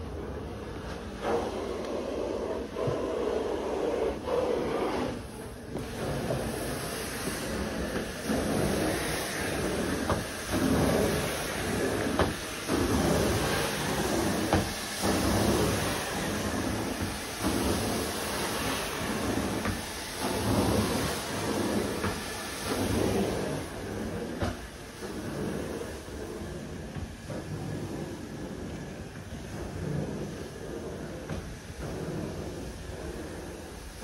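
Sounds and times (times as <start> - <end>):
carpet cleaner suction rushing: 0.0 - 34.0.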